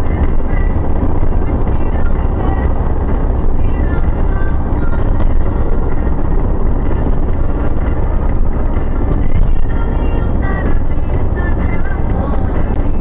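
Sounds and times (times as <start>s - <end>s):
van road and engine rumble: 0.0s - 13.0s.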